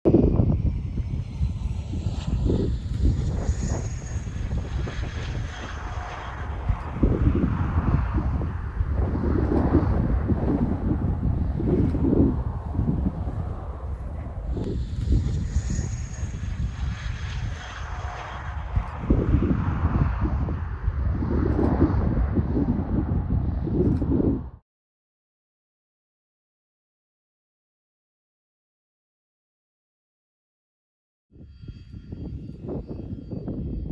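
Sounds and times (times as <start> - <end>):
jet engines rushing with turbine whine: 0.1 - 24.6, 31.4 - 33.9
wind rumbling on microphone: 0.1 - 24.6, 31.3 - 33.9.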